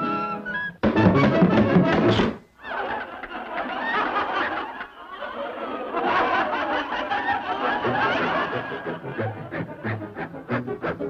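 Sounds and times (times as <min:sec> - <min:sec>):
orchestra music: 0:00.0 - 0:02.4, 0:07.8 - 0:11.0.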